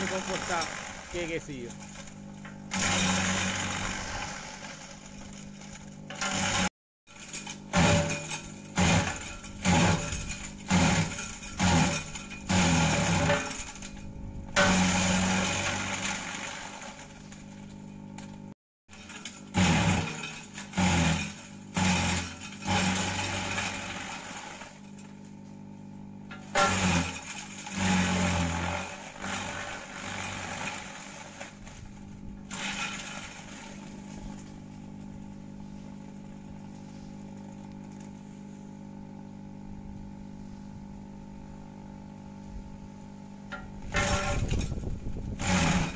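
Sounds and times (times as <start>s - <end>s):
chaff cutter humming: 0.0s - 45.9s
sharp chopping of branches: 7.6s - 13.8s, 43.6s - 45.9s.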